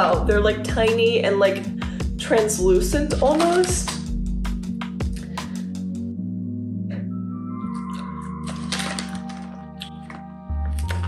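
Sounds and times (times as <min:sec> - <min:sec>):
background music with bass: 0:00.0 - 0:11.0
crunchy snack being chewed: 0:07.7 - 0:11.0.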